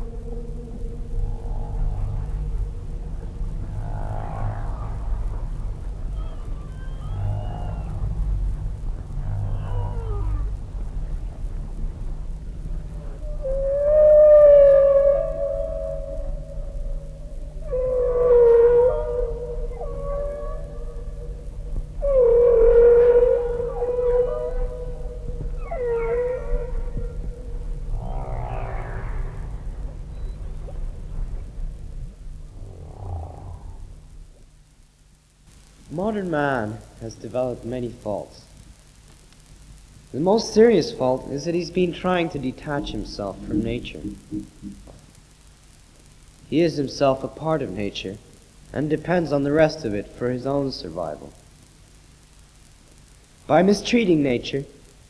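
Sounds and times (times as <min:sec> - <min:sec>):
whale song cries: 0:00.0 - 0:11.2, 0:13.0 - 0:31.5, 0:32.5 - 0:33.9
steady low hum: 0:00.0 - 0:55.0
held tone: 0:42.4 - 0:44.9.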